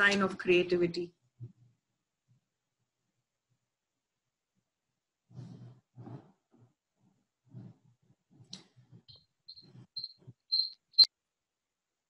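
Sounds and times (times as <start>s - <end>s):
high-pitched chirps: 9.1s - 11.1s.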